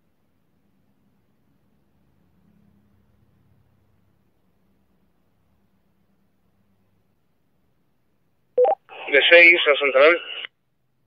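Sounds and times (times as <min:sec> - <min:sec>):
two-way radio two-note beep: 0:08.6 - 0:08.8
radio voice: 0:08.6 - 0:10.5.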